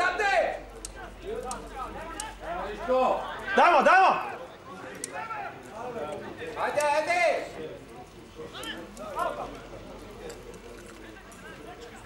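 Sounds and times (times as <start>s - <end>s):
men calling and shouting: 0.0s - 12.0s.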